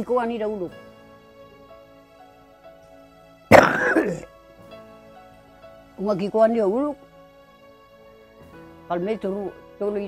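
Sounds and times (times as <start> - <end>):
soft background music: 0.0 - 10.0
old man coughing: 3.5 - 4.3.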